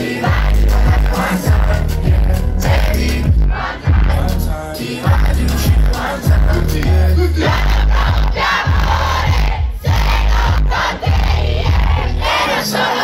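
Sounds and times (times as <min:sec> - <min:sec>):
heavy bass beat: 0:00.0 - 0:12.5
crowd shouting along: 0:07.3 - 0:13.0.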